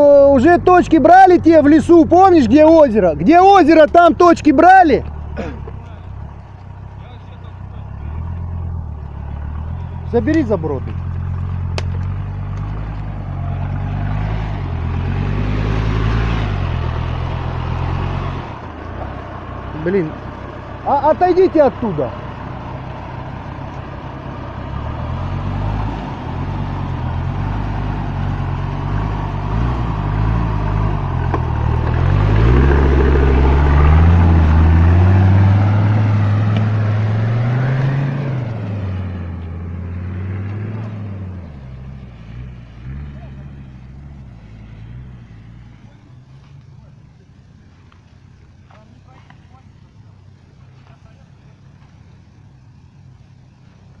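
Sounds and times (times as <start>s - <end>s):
suv engine revving: 0.0s - 54.0s.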